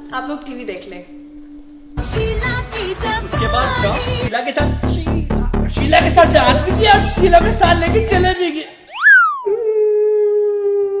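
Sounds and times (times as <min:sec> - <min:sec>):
comic pitch sweep sound effect: 0:08.9 - 0:09.7.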